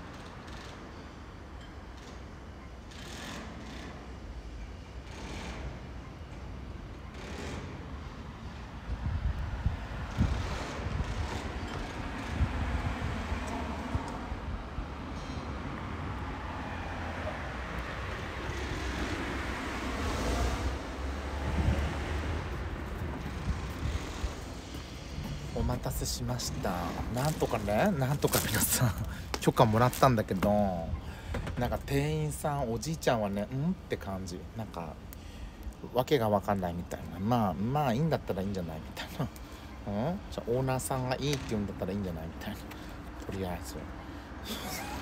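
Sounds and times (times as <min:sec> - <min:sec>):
road traffic noise: 0:00.0 - 0:45.0
wind rumble on microphone: 0:07.9 - 0:16.5, 0:17.3 - 0:32.3.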